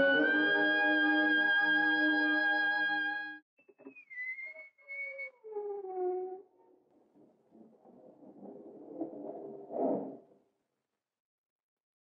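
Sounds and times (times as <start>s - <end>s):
whistle-like sliding tones: 3.6s - 6.4s.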